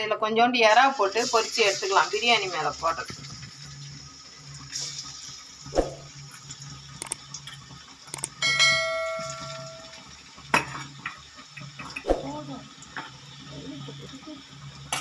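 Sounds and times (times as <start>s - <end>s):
prawns frying: 0.6s - 15.0s
bell-like ding: 8.4s - 10.1s.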